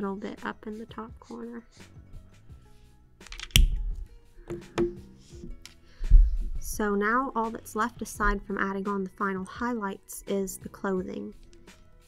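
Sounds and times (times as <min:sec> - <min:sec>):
quiet background music: 0:00.0 - 0:12.0
plastic marker knock: 0:03.5 - 0:05.6.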